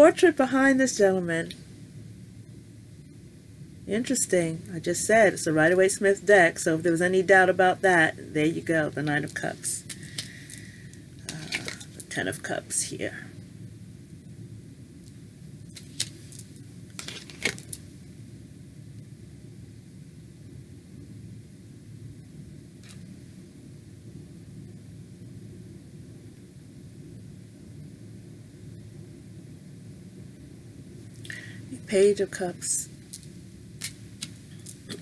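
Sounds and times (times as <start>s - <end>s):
steady low hum: 0.0s - 35.0s
cards clicking and rustling: 15.7s - 17.8s, 33.2s - 35.0s.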